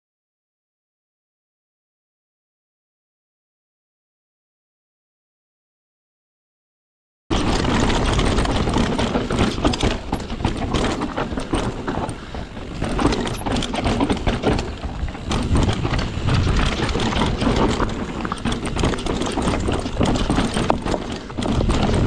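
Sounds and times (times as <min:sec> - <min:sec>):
bike rattling over bumps: 0:07.3 - 0:22.0
bike tyres rolling over gravel: 0:07.3 - 0:22.0
constant low rumble: 0:07.3 - 0:22.0.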